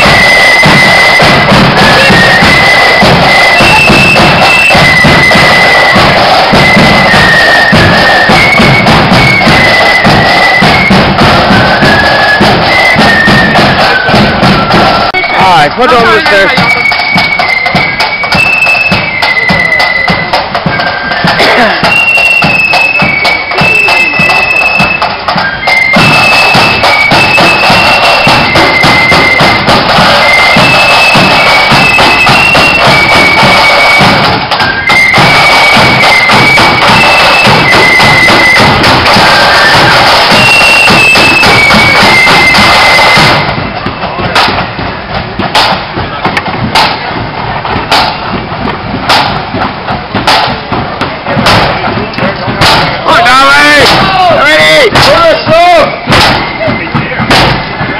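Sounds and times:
flutes playing high melody: 0:00.0 - 0:48.5, 0:50.5 - 0:57.9
snare and bass drums: 0:00.0 - 0:57.9.

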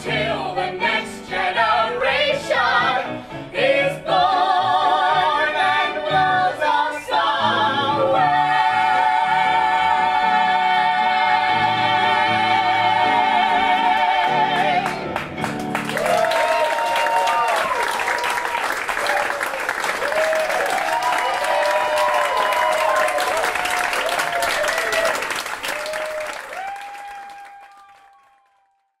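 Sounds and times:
audience applauding: 0:14.7 - 0:29.0
cheering with whoops: 0:15.9 - 0:28.9.

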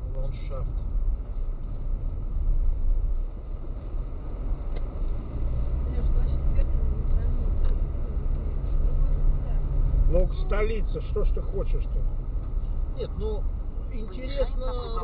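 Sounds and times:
car engine and tyres on road: 0:00.0 - 0:15.0.

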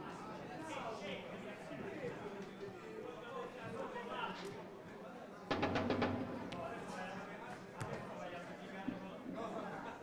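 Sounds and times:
indistinct talk of people: 0:00.0 - 0:10.0.

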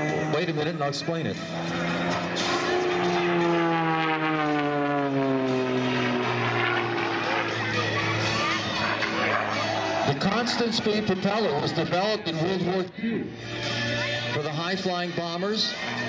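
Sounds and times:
airplane engine and propeller drone: 0:00.0 - 0:16.0.

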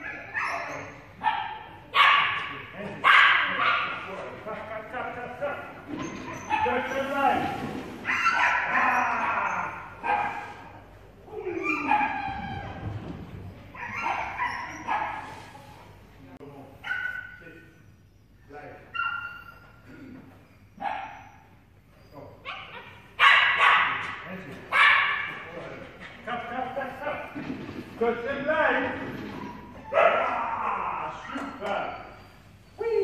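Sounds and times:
small dog barking and yipping: 0:08.1 - 0:08.9, 0:22.4 - 0:24.1.

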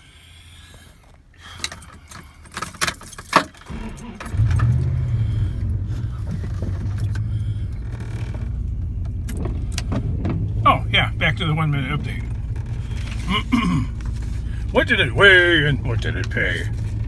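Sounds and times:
car engine starting and running: 0:01.0 - 0:17.0
keys rattling: 0:01.5 - 0:04.9.

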